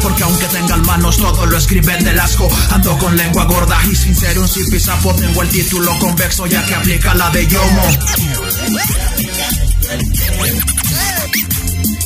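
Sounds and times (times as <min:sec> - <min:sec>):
turntable scratching: 0:00.0 - 0:11.9
hip hop beat: 0:00.0 - 0:12.0
steady bass line: 0:00.0 - 0:12.0.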